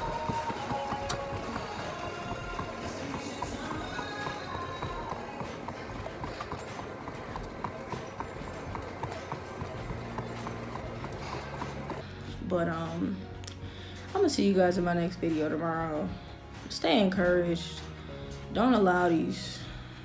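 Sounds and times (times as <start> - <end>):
loud background music: 0.0 - 8.0
footfalls of person running: 0.0 - 12.0.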